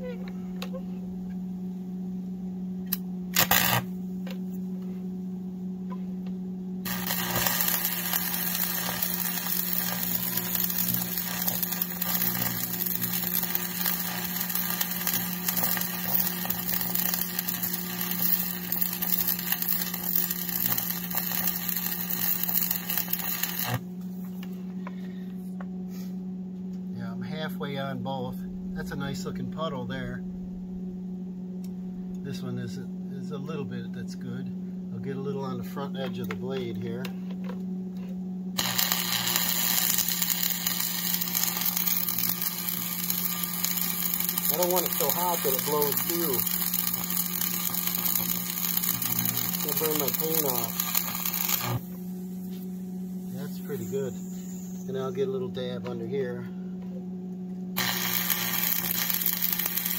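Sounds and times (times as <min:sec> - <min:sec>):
low hum: 0:00.0 - 0:59.9
welding arc crackling: 0:02.8 - 0:04.4, 0:06.8 - 0:24.5, 0:38.6 - 0:55.4, 0:57.8 - 0:59.9
loud burst: 0:06.8 - 0:23.8.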